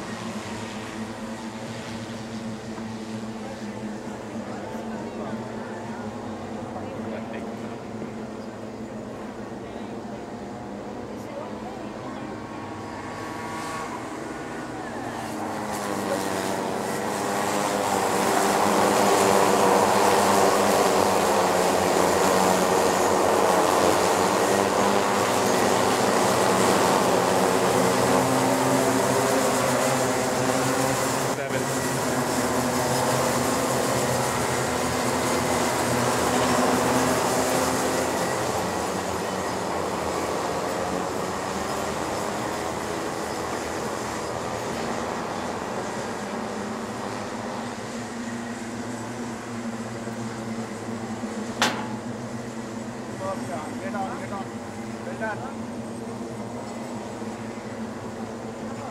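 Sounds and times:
kart engines racing by: 0:11.4 - 0:58.9.

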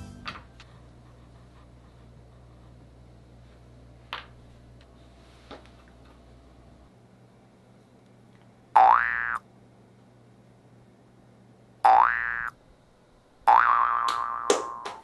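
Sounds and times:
comic boing sound effects: 0:08.8 - 0:09.4, 0:11.9 - 0:12.5, 0:13.5 - 0:14.8.

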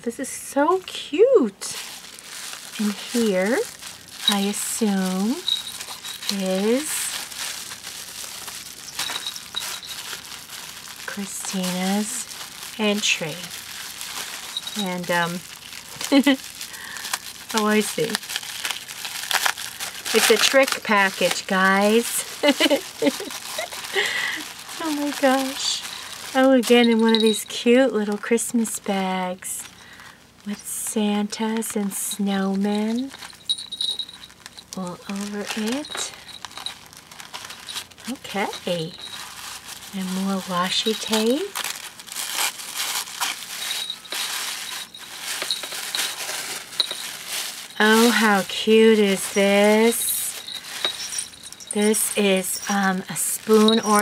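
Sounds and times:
bubble wrap crinkling: 0:00.6 - 0:54.0.

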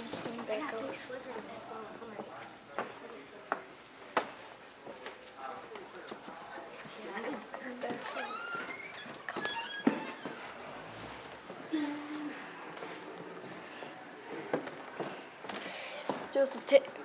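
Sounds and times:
door hinge creaking: 0:08.0 - 0:10.6.

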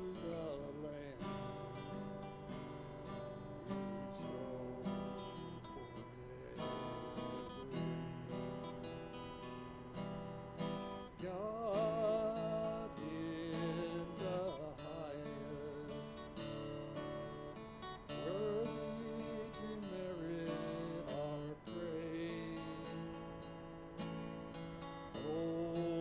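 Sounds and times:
acoustic guitar strumming: 0:00.0 - 0:26.0
man singing: 0:00.0 - 0:26.0.

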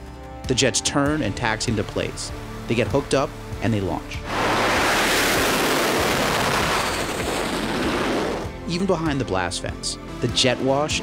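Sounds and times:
jet engines roaring at full power: 0:04.3 - 0:08.5.

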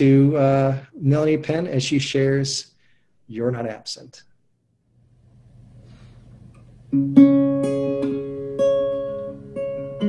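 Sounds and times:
faint hiss: 0:05.1 - 0:06.9
acoustic guitar chord: 0:06.9 - 0:10.0.

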